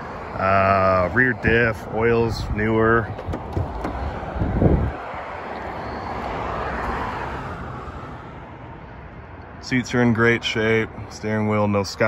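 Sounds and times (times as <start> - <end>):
passing vehicle rushing: 0.0 - 9.1
low thump: 3.1 - 4.9.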